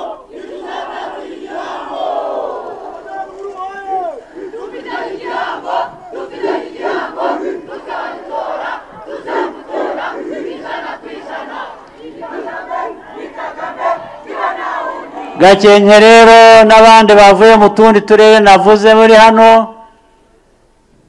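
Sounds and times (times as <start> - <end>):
crowd cheering and shouting: 0.0 - 15.9.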